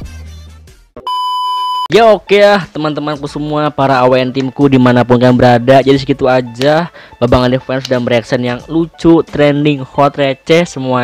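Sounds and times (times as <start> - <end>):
steady electronic beep: 1.0 - 1.9.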